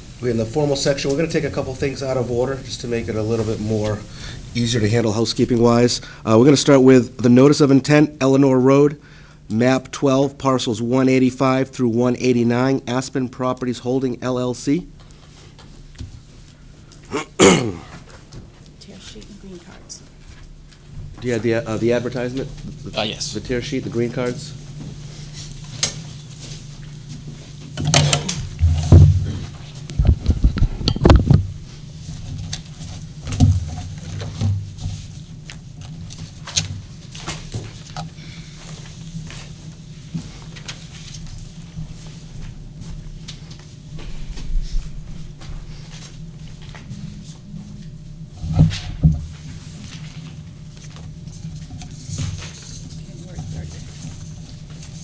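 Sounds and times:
steady low hum: 0:00.0 - 0:55.0
microphone handling knocks and thumps: 0:28.5 - 0:31.6.

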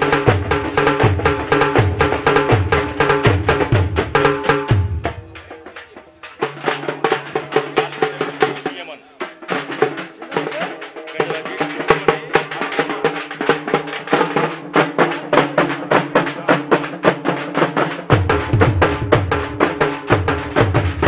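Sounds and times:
large drums beaten fast: 0:00.0 - 0:21.0.

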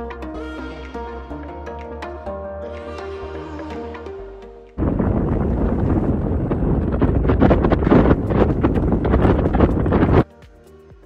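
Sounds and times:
wind buffeting microphone: 0:04.8 - 0:10.3.

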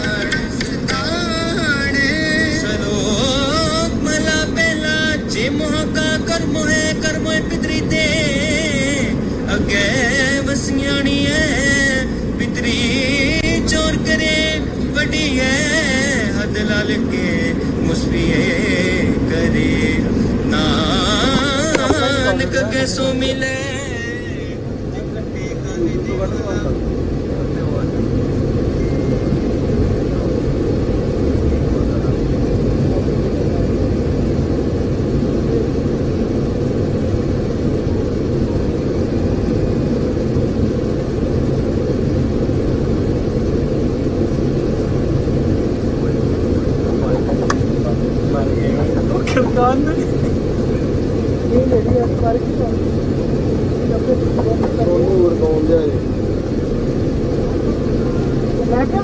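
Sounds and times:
indistinct voices: 0:00.0 - 0:59.0
low rumble of vehicle traffic: 0:00.0 - 0:59.0.

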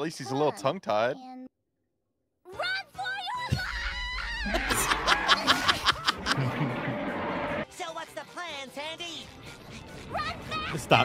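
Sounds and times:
people laughing: 0:04.4 - 0:07.4.

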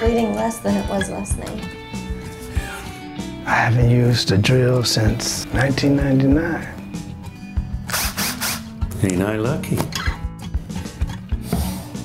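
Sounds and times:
power drill whirring: 0:07.9 - 0:08.6.

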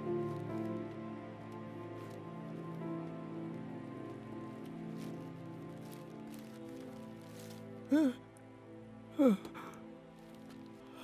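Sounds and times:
sustained film score chord: 0:00.0 - 0:11.0.

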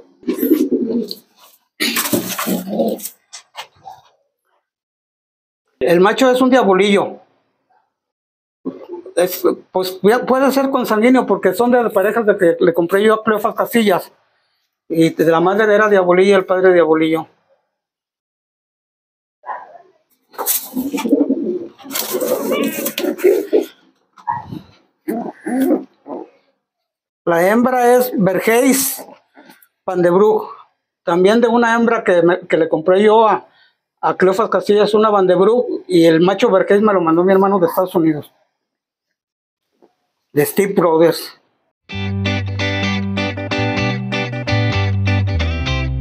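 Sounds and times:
pigeons cooing: 0:00.1 - 0:04.1, 0:20.4 - 0:26.4.

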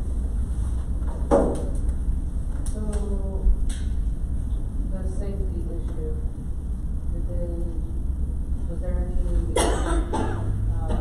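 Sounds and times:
low room hum: 0:00.0 - 0:11.0
person coughing: 0:09.5 - 0:11.0.

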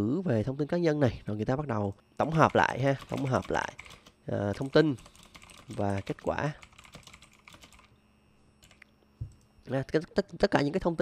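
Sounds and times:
computer keyboard typing: 0:02.2 - 0:07.9, 0:08.6 - 0:08.9.

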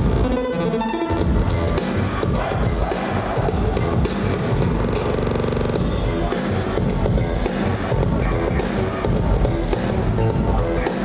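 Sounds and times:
electronic dance music: 0:00.0 - 0:11.0.

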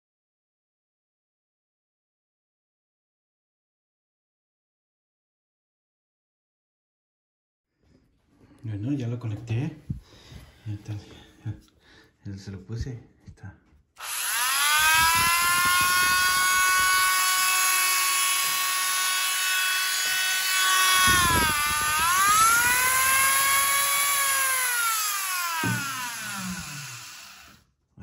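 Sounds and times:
rotary tool whining: 0:14.0 - 0:27.6.

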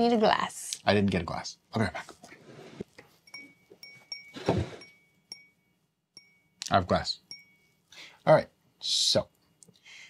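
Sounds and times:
glass clinking: 0:03.1 - 0:07.9.

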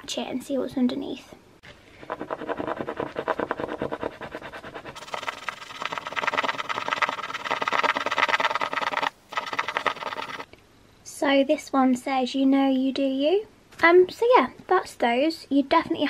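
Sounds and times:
coin scratching card: 0:02.0 - 0:10.5.

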